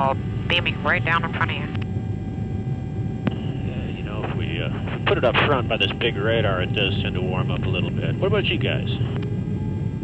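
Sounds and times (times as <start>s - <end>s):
aircraft rumble: 0.0s - 10.0s.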